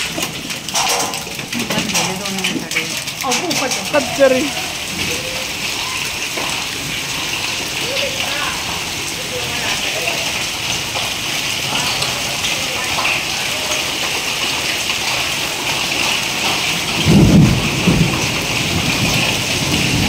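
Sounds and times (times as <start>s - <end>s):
rain hissing on street: 0.0s - 20.0s.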